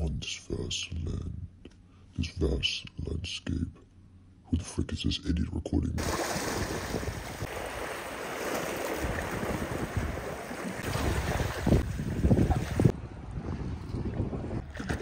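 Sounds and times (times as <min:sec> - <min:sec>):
surf washing against rocks: 0:06.0 - 0:12.9
wind buffeting microphone: 0:06.5 - 0:07.9, 0:09.0 - 0:15.0.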